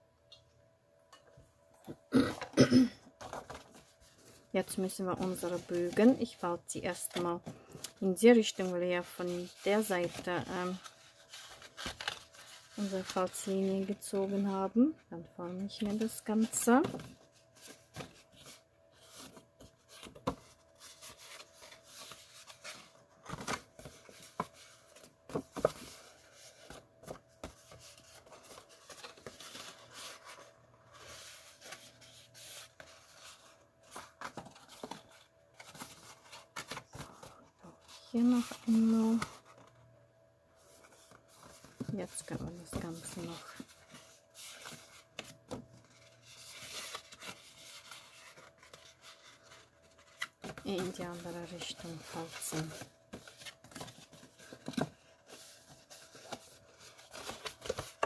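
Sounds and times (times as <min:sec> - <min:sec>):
cardstock crinkling and creasing: 0:03.2 - 0:14.8, 0:15.6 - 0:39.8, 0:40.7 - 0:58.0.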